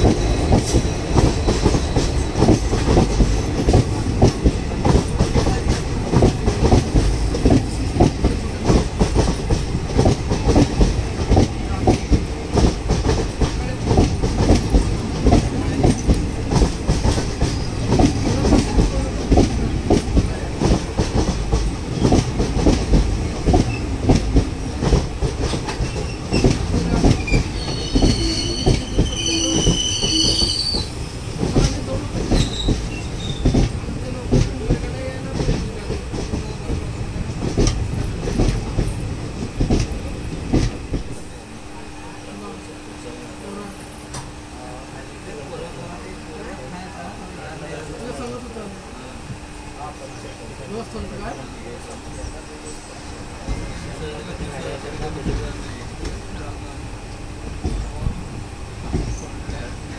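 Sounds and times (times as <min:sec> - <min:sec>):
train wheels rumbling and clattering: 0:00.0 - 0:48.6, 0:49.2 - 0:59.9
high wheel squeal: 0:27.2 - 0:31.0.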